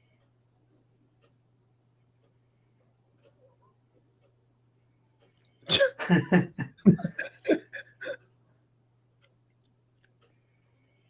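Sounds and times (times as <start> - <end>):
faint low hum: 0.0 - 11.0
man laughing heartily: 5.7 - 8.3.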